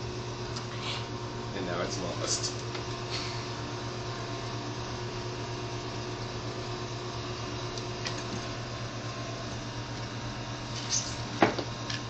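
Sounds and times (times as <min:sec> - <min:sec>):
room background hum and hiss: 0:00.0 - 0:12.0.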